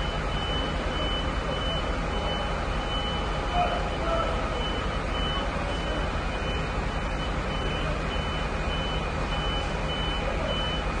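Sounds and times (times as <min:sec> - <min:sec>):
truck engine running: 0:00.0 - 0:11.0
warning beeper short high beeps: 0:00.0 - 0:11.0.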